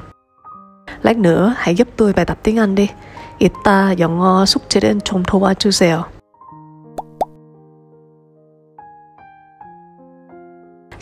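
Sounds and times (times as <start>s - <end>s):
soft keyboard music: 0.0s - 11.0s
rising pop sound effects: 6.9s - 7.4s.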